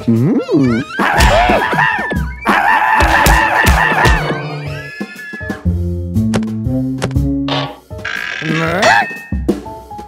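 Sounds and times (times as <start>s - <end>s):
cartoon music: 0.0s - 5.7s, 7.5s - 9.4s.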